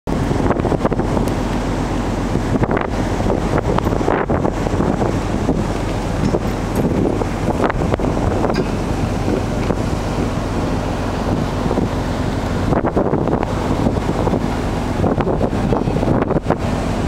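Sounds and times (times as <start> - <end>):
ship low drone: 0.1 - 17.0
wind buffeting microphone: 0.1 - 17.0.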